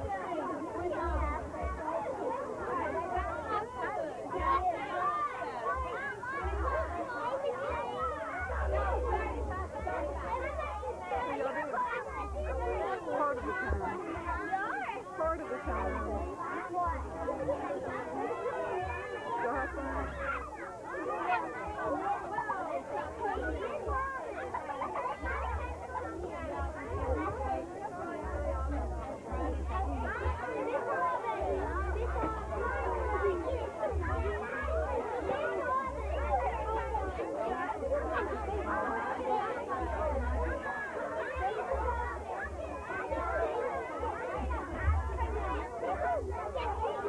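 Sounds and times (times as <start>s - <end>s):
children chattering: 0.0s - 47.0s.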